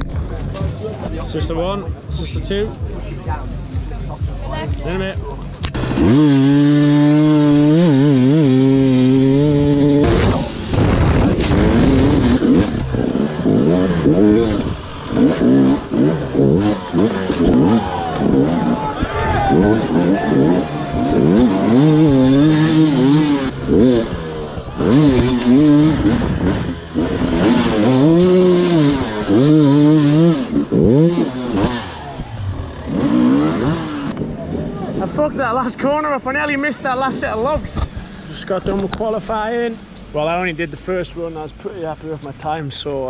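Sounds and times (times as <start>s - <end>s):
dirt bike engine revving: 5.6s - 37.6s.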